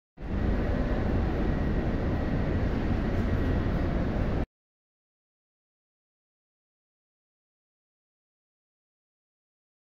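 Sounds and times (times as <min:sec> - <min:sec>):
train rumble and hiss: 0:00.2 - 0:04.4
faint high whine: 0:00.2 - 0:04.5.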